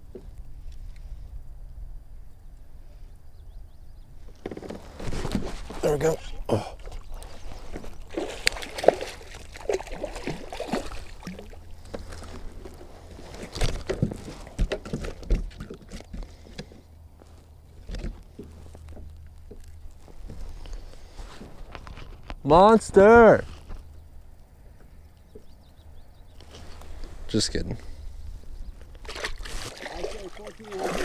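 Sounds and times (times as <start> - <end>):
knocks and clicks against hull: 0.1 - 0.4, 4.3 - 5.8, 11.2 - 16.8, 17.8 - 20.5, 24.8 - 25.6
water sloshing and splashing: 4.3 - 16.6, 28.8 - 31.0.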